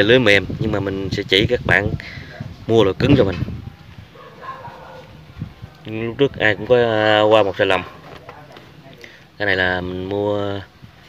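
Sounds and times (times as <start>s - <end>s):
faint dog call: 3.6s - 5.9s.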